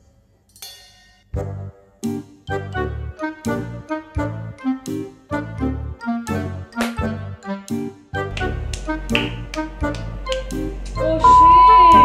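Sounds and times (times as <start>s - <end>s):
finger snaps keeping time: 6.2s - 11.0s
sustained pitched notes: 8.2s - 12.0s.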